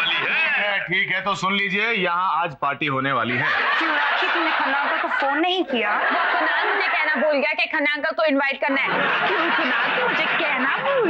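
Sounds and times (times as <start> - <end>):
audience laughter: 3.3 - 7.5, 8.7 - 11.0.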